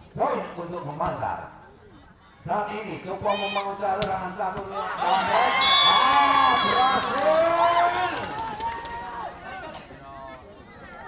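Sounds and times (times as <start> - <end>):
crowd shouting and cheering: 4.6 - 11.0.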